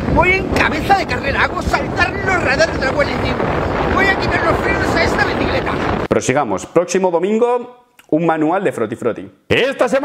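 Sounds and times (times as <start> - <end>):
wind buffeting microphone: 0.0 - 6.1
man's voice: 0.0 - 10.0.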